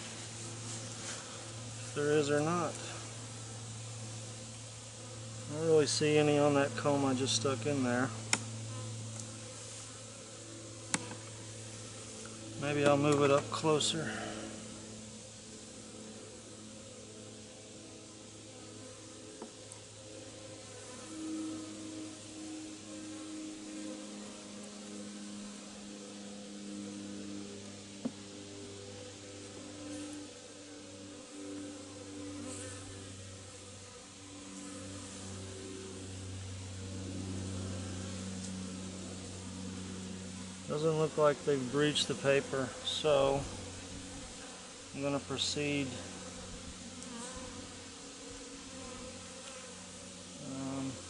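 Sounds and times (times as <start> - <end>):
hum of many bees: 0.0 - 51.0
single bee buzzing close: 0.0 - 51.0.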